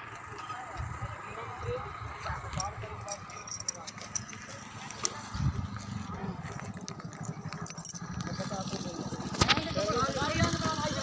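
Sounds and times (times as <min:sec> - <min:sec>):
indistinct talk of people: 0:00.0 - 0:11.0.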